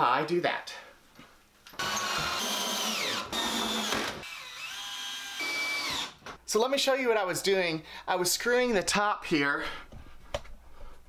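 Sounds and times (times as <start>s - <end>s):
cordless drill driving screws: 1.8s - 6.2s.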